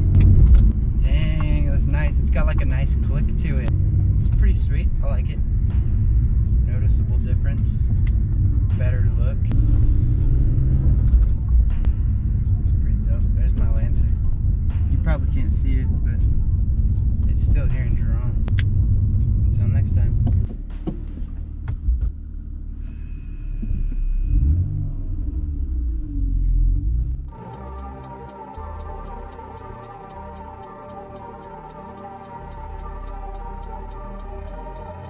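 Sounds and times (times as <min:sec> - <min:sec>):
music with ticking beat: 0:00.0 - 0:22.3, 0:27.2 - 0:35.0
car engine and road rumble: 0:00.0 - 0:35.0.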